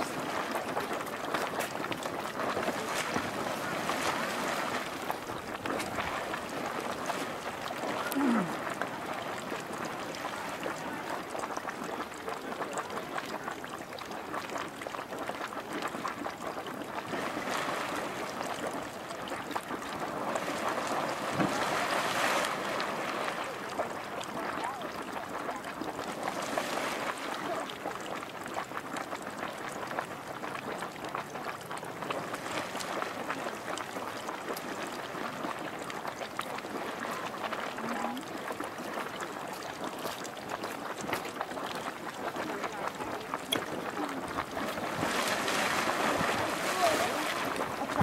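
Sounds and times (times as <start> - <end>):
geyser pool churning and splashing: 0.0 - 48.0.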